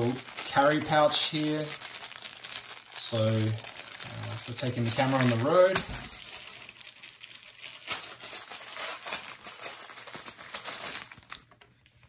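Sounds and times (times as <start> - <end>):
plastic bag crinkling: 0.0 - 11.8.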